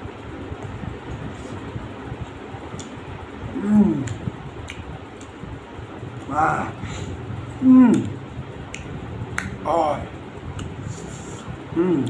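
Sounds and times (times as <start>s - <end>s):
lip-smacking mouth clicks: 2.7s - 3.0s, 3.9s - 5.4s, 7.9s - 9.6s, 10.5s - 12.0s
person humming: 3.5s - 4.3s, 6.2s - 8.2s, 10.9s - 12.0s.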